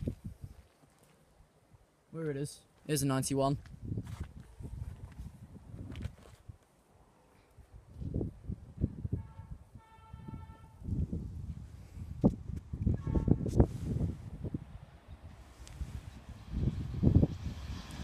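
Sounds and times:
wind rumble on microphone: 0.0s - 0.7s, 3.6s - 6.6s, 7.6s - 18.0s
electric train approaching: 16.2s - 18.0s.

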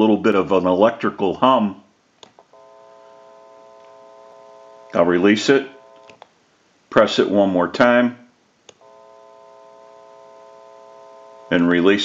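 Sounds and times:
telephone dial tone: 2.5s - 6.2s, 8.8s - 12.0s
short clicks: 5.9s - 6.3s.

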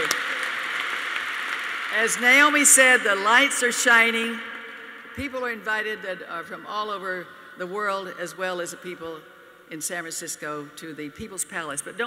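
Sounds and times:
audience applauding: 0.0s - 2.5s.

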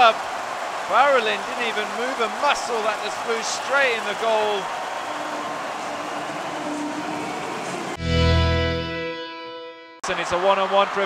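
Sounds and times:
arena crowd noise: 0.0s - 8.0s, 10.0s - 11.0s.

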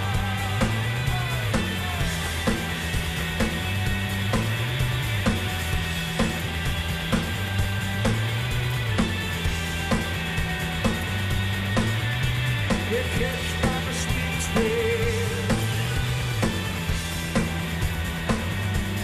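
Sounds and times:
live rock band playing: 0.0s - 19.0s
steady drum beat: 0.0s - 19.0s.

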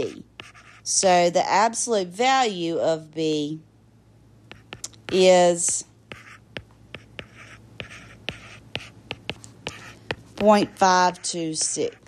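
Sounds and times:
stylus scratching on screen: 0.0s - 1.1s, 4.5s - 12.0s.

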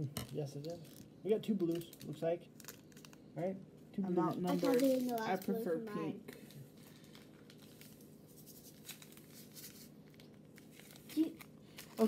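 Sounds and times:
plastic bags crinkling: 0.3s - 3.3s, 4.3s - 12.0s.

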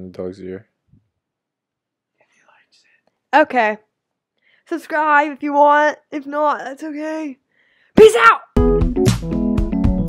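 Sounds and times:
faint whispering: 2.4s - 3.0s.

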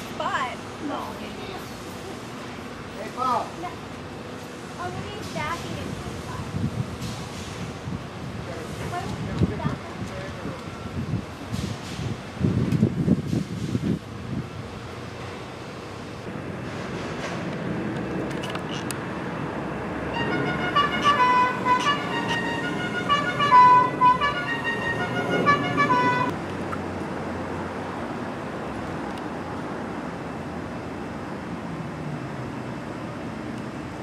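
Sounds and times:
street traffic: 0.0s - 34.0s
musical vehicle horn tune: 20.1s - 26.3s.

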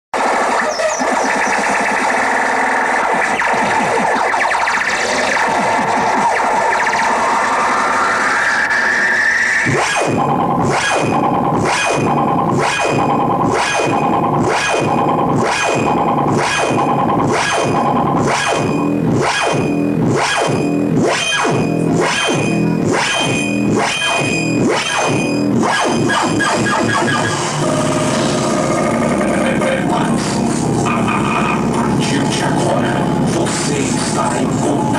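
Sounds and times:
pulsing electronic beat: 0.2s - 34.9s
synthesizer rising sweep: 0.2s - 34.9s.

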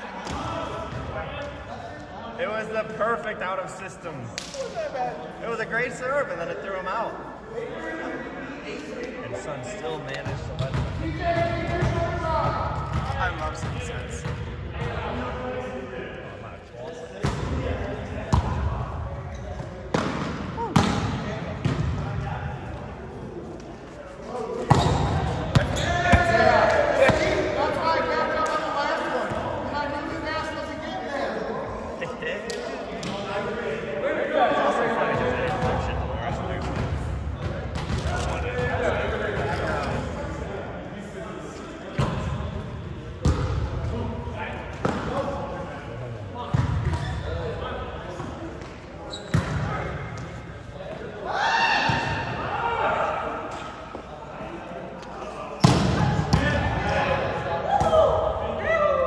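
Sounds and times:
players chattering and calling: 0.0s - 59.0s.

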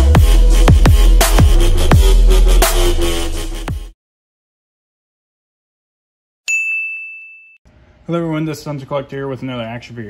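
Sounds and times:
bright bell-like ding: 6.5s - 7.6s.

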